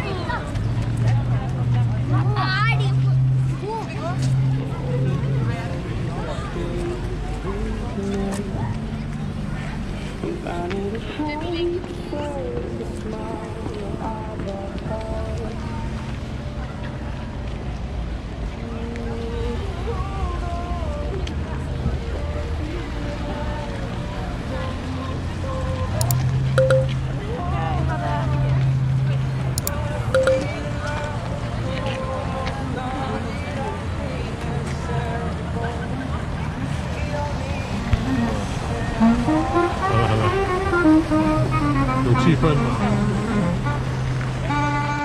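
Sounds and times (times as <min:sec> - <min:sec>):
passers-by talking: 0:00.0 - 0:45.0
street background noise: 0:00.0 - 0:45.0
melody of short held notes: 0:26.0 - 0:27.1, 0:29.6 - 0:30.8, 0:38.9 - 0:43.9.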